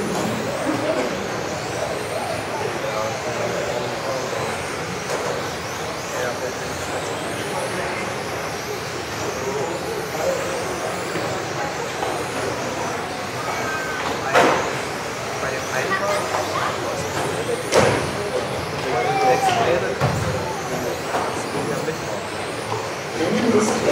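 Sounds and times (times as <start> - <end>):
toy car motors whining: 0.0 - 23.8
steady running noise: 0.0 - 23.9
voices murmuring: 0.0 - 23.9.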